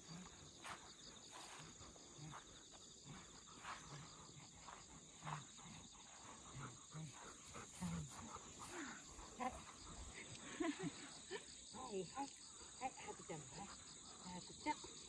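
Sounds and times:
crickets chirping: 0.0 - 15.0
dog panting: 1.4 - 11.3.

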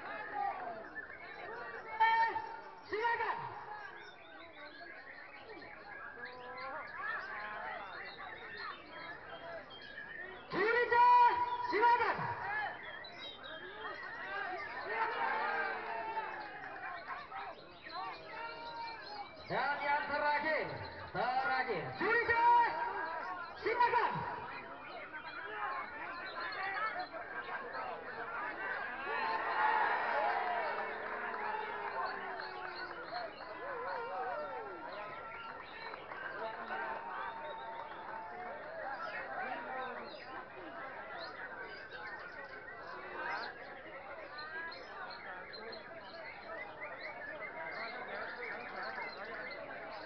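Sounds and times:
crowd voices: 0.0 - 50.0
songbirds chirping and trilling: 0.0 - 50.0.

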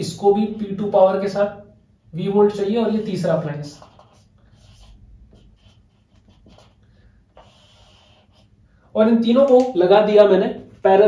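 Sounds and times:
marker scratching on whiteboard: 2.4 - 8.6.

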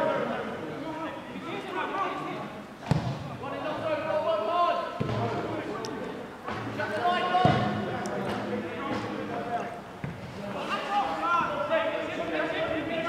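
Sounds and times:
football kick thuds: 2.9 - 3.3.

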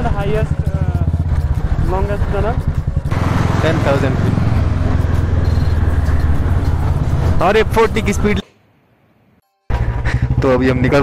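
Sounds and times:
motorcycle engine pulsing: 0.0 - 8.4.

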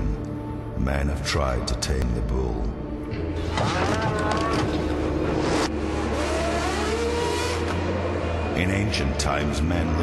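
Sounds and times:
steady low drone: 0.0 - 10.0
race car engine revving: 5.1 - 8.6.

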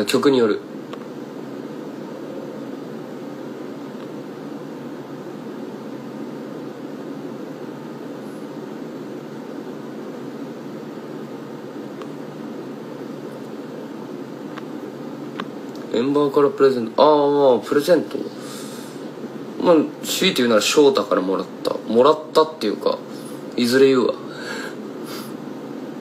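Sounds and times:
steady room hum: 0.0 - 26.0.

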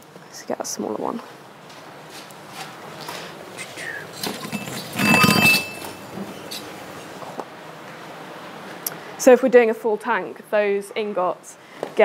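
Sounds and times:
metal ingots clanging: 4.2 - 6.7.

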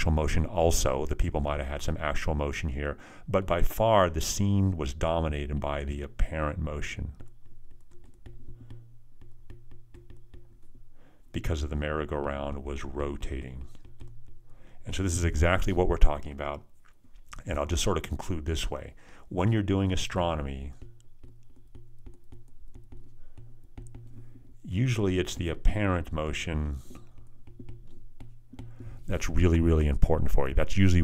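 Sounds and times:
stylus tapping on glass screen: 6.8 - 11.1, 12.2 - 14.8, 19.9 - 26.2, 26.8 - 29.3.

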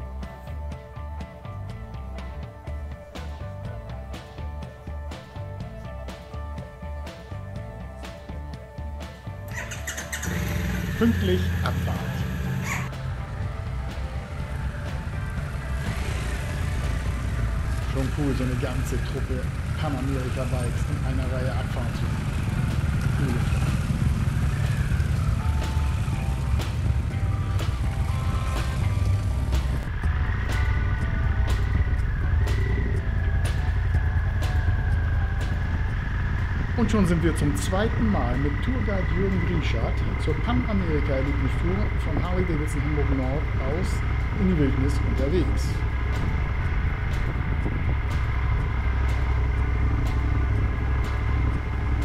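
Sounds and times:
background music: 0.0 - 52.0
motorcycle engines running: 0.0 - 52.0.

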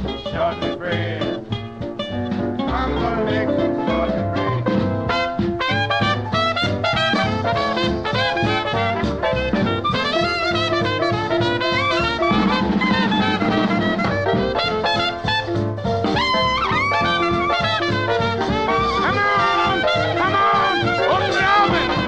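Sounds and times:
swing dance-band music: 0.0 - 22.0.

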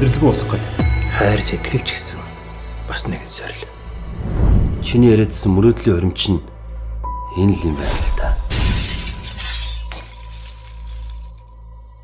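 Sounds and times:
glass shattering: 8.5 - 11.6.

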